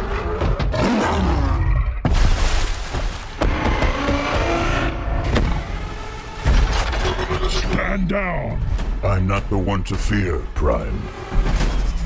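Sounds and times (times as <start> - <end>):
film score: 0.0 - 12.0.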